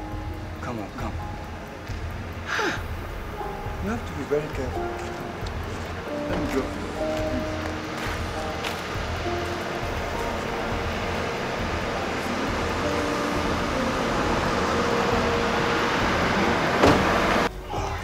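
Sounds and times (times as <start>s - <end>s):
background music: 0.0s - 18.0s
hissing swell: 2.4s - 17.5s
car door shutting: 3.9s - 17.5s.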